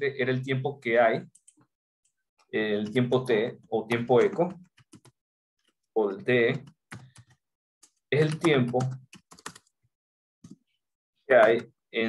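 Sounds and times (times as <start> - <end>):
computer keyboard typing: 3.9 - 5.2, 6.9 - 7.4, 8.2 - 9.7.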